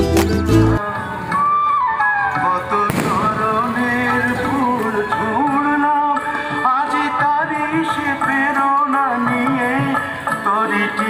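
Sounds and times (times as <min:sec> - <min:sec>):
firecracker bang: 0:02.8 - 0:04.5.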